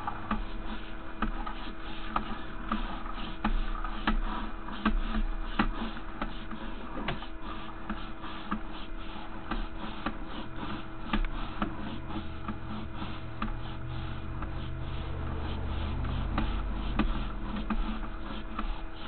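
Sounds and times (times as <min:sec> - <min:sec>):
steady electrical hum: 0:00.0 - 0:19.0.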